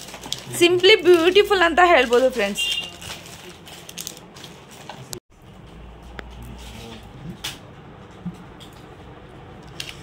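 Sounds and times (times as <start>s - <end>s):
plastic packets rustling: 0.0s - 5.2s.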